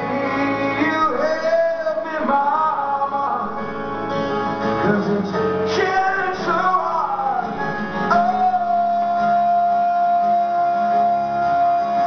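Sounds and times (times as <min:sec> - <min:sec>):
man singing: 0:00.0 - 0:12.0
rock band backing: 0:00.0 - 0:12.0
strummed acoustic guitar: 0:00.0 - 0:12.0.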